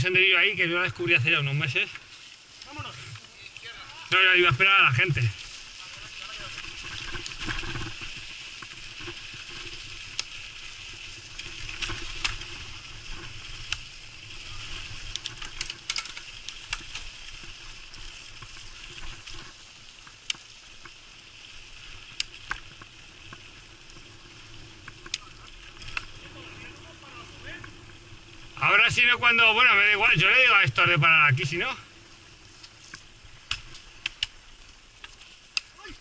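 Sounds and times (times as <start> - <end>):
bike tyres on dirt and gravel: 0.0 - 36.0
bike clicks and rattles: 6.0 - 26.2, 32.5 - 35.8.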